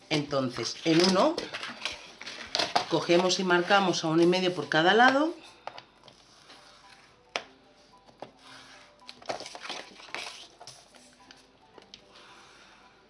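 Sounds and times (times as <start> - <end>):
scoring tool scraping: 6.1 - 7.2, 8.3 - 9.1.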